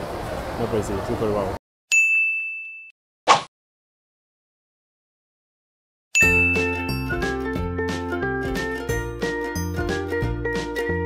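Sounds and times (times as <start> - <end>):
high-pitched ding: 1.9 - 2.9, 6.2 - 7.2.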